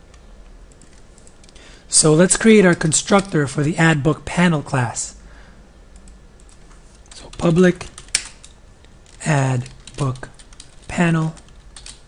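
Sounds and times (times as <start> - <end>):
low background noise: 0.0 - 12.0
faint keyboard typing: 0.1 - 1.7, 2.6 - 3.4, 5.9 - 12.0.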